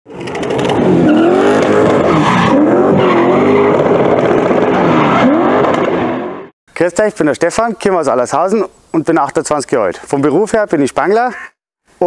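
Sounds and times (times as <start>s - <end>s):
car engine revving hard: 0.7s - 6.5s.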